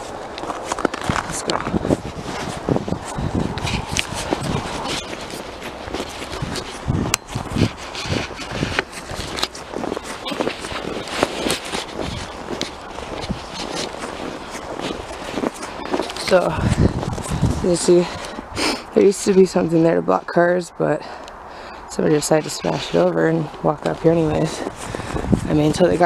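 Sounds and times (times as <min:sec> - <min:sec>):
footsteps in snow: 0:00.0 - 0:26.0.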